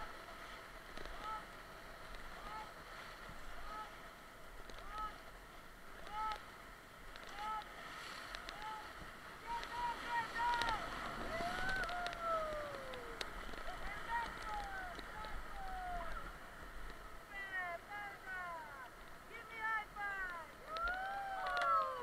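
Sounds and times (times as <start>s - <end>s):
paddle strokes in water: 0.0s - 21.6s
whitewater rushing and splashing: 0.0s - 22.0s
people whooping and yelling: 11.3s - 16.3s, 20.6s - 22.0s.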